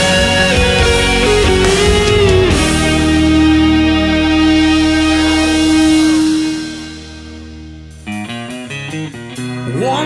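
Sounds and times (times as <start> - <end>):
picked guitar notes: 0.0 - 10.0
rock guitar chord ringing: 0.0 - 10.0.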